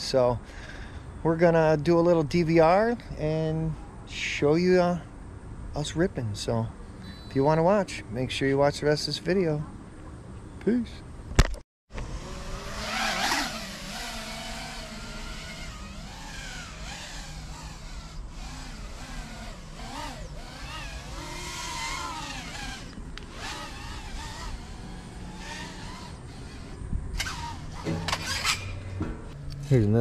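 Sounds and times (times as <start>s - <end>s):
racing drone motors whining: 11.9s - 29.7s.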